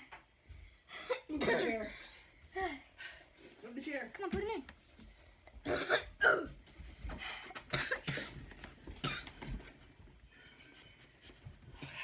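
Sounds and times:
person coughing: 0:01.1 - 0:02.0, 0:05.6 - 0:06.6, 0:07.7 - 0:08.4.

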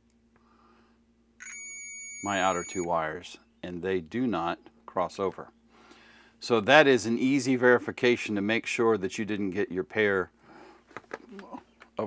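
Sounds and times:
multimeter continuity beep: 0:01.4 - 0:03.0.

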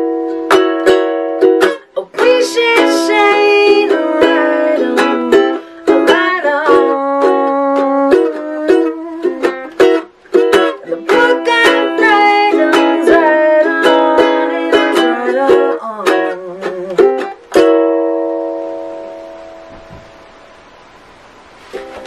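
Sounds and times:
ukulele strummed and picked: 0:00.0 - 0:20.7, 0:21.5 - 0:22.0.

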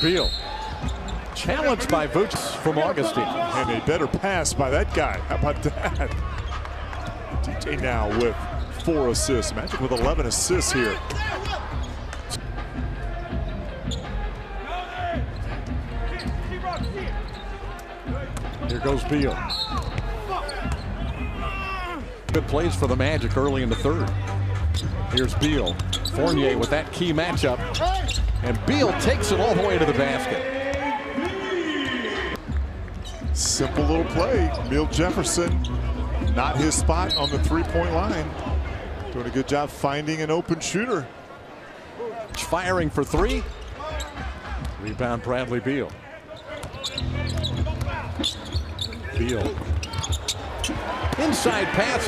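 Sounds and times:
crowd noise: 0:00.0 - 0:52.0
basketball bouncing on court: 0:46.6 - 0:51.3.

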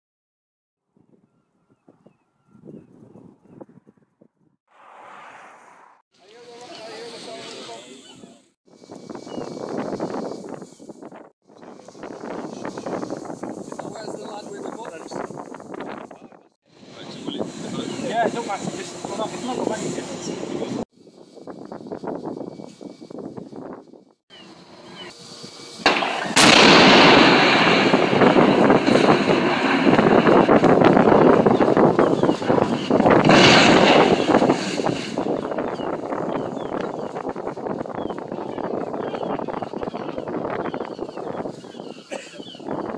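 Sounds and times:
wind buffeting microphone: 0:00.9 - 0:04.6, 0:08.7 - 0:24.2, 0:25.4 - 0:42.9
loud demolition blast: 0:25.8 - 0:36.8
tower collapsing rumble: 0:25.8 - 0:40.7.

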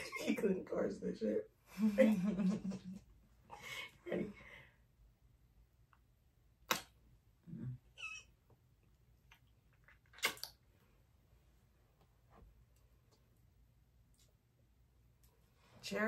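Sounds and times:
kiss lip smacks: 0:10.1 - 0:10.6.

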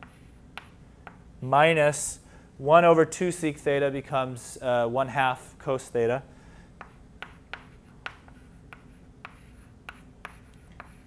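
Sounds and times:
chalk tapping and scraping: 0:00.0 - 0:01.3, 0:06.8 - 0:11.0.

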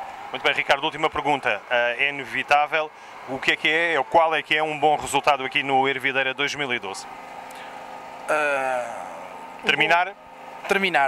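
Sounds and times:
steady background hum: 0:00.0 - 0:11.0
man saying uh: 0:08.3 - 0:09.2.

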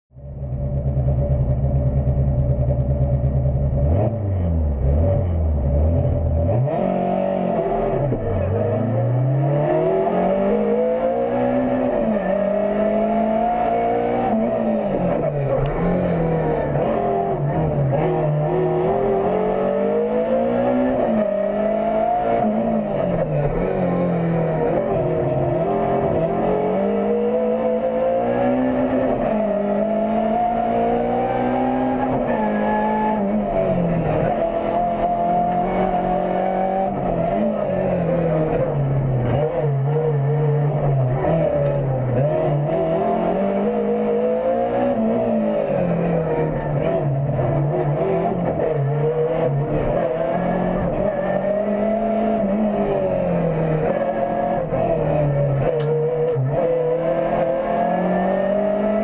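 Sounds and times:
car engine revving hard: 0:03.7 - 0:59.0.

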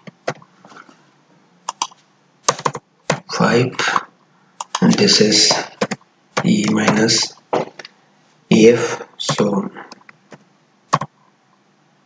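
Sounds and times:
computer keyboard keystrokes: 0:01.7 - 0:03.2, 0:04.6 - 0:05.1, 0:10.9 - 0:11.1.

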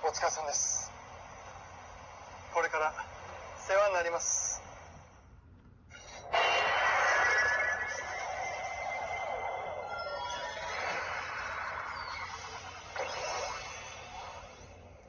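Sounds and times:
toy electronic sound effect: 0:06.3 - 0:15.0.

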